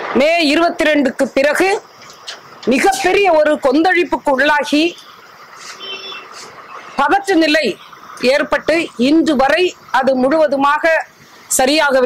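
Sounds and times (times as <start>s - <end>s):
room and street background noise: 0.0s - 12.0s
faint high-pitched beep: 5.8s - 7.0s.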